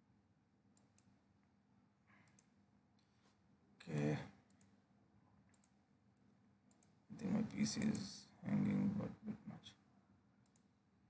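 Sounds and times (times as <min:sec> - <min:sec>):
computer mouse clicks: 0:02.2 - 0:03.1, 0:03.9 - 0:04.7, 0:05.5 - 0:05.8, 0:06.7 - 0:07.0, 0:10.4 - 0:10.7
person speaking: 0:03.8 - 0:04.4, 0:07.1 - 0:09.8.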